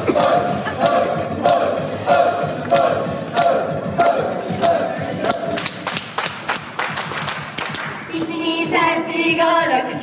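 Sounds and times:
hand clapping: 0.2 - 1.7, 2.6 - 3.6, 4.6 - 8.0.

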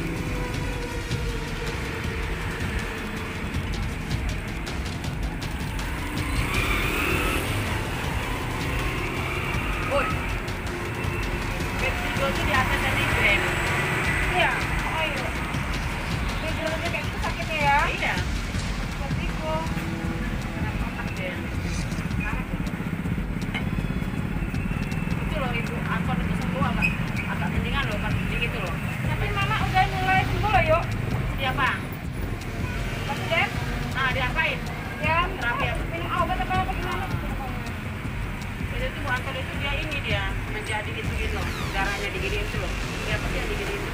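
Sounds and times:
low rumble of road traffic: 0.0 - 43.9
voices talking: 0.0 - 43.9.

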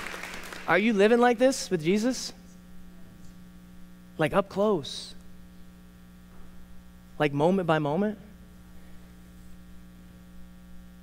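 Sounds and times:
electrical mains hum: 0.0 - 11.0
man speaking: 0.7 - 2.4, 4.2 - 5.2, 7.2 - 8.4.

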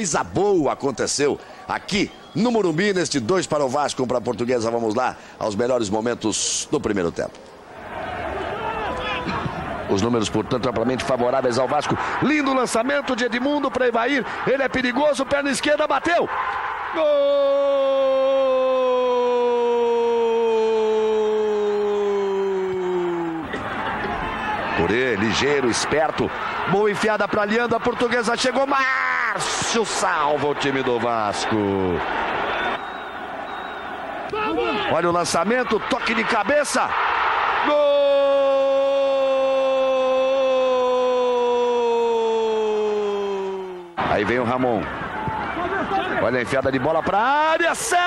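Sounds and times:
commentator shouting: 24.6 - 32.0, 34.3 - 37.0, 37.6 - 44.4.

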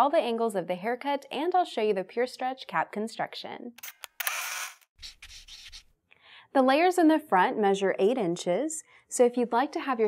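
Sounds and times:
faint rubbing noise: 5.0 - 5.9.

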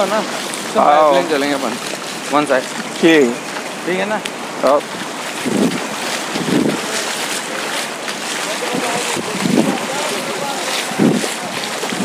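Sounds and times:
small waves washing in: 0.0 - 12.0
wind rumbling on microphone: 4.8 - 12.0.

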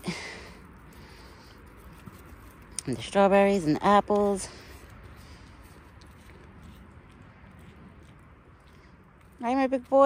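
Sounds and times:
faint outdoor hush: 0.0 - 3.2.

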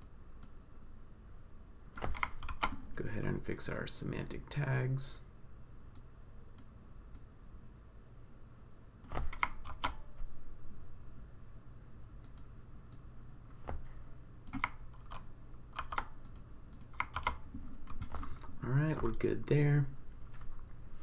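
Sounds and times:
typing on computer keyboard: 2.0 - 2.8, 9.0 - 10.0, 14.5 - 19.2.

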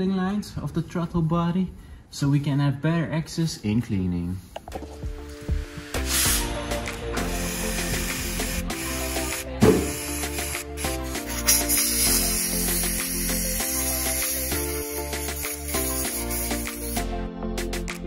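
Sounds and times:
background music: 4.6 - 18.0
aerosol spray hissing: 5.9 - 17.1.

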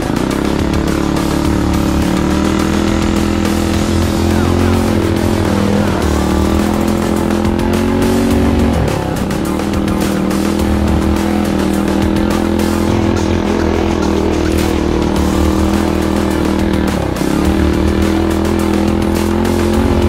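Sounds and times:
small engine running under throttle: 0.0 - 20.0.

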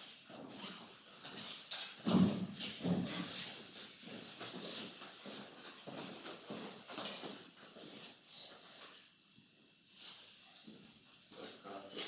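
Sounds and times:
footsteps: 0.0 - 12.0.

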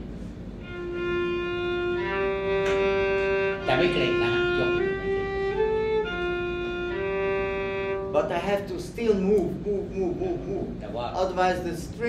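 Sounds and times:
violin long bow strokes: 0.6 - 8.3.

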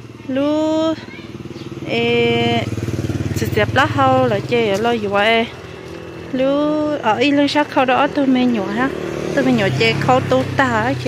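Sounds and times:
small motorcycle engine running: 0.0 - 11.0
people talking in high voices: 0.2 - 11.0.

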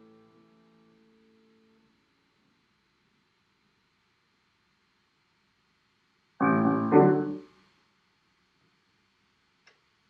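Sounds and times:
faint click: 9.6 - 9.9.

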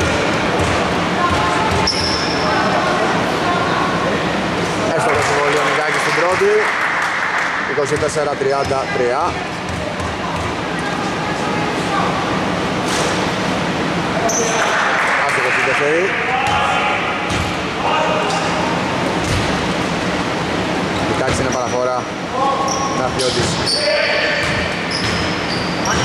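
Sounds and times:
scattered voices: 0.0 - 6.8, 7.5 - 19.3.

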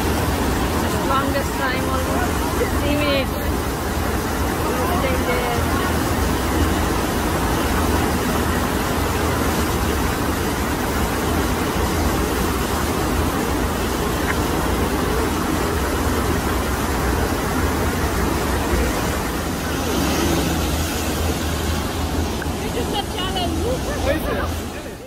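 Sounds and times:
loud rush of water: 0.0 - 25.0.

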